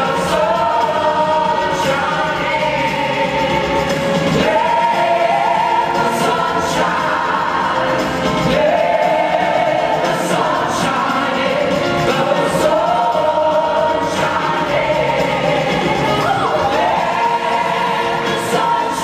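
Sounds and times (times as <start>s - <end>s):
backing music: 0.0s - 19.0s
group singing in harmony: 0.0s - 19.0s.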